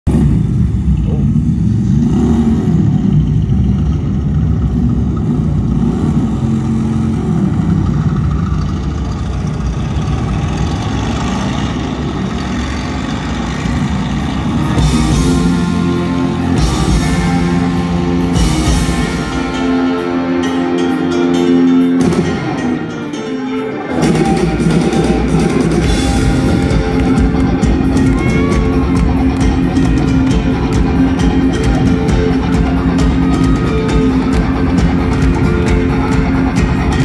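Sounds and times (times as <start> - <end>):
low droning intro: 0.1 - 20.9
rock band through loud pa: 13.9 - 37.0
cymbals: 14.1 - 37.0.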